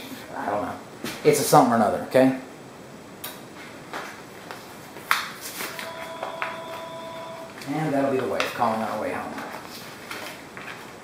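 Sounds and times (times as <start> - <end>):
faint steady tone: 5.7 - 7.8.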